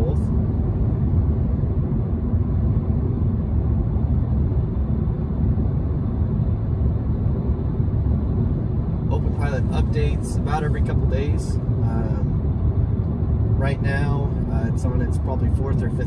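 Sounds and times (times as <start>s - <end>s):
road and tyre noise in car: 0.0s - 16.0s.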